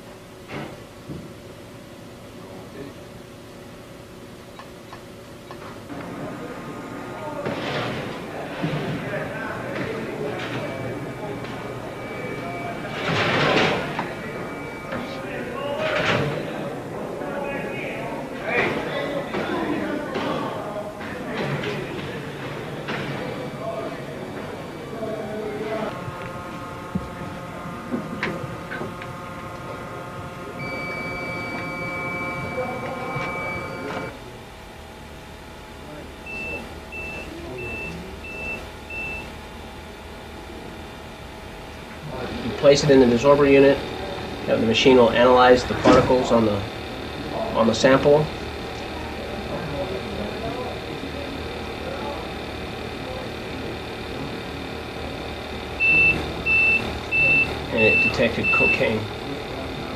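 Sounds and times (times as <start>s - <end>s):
machine hum: 0.0s - 59.9s
held high beep: 10.3s - 16.1s, 30.6s - 34.1s, 36.3s - 39.3s, 55.8s - 58.9s
short beeps: 10.4s - 16.1s, 30.6s - 34.1s, 36.3s - 39.3s.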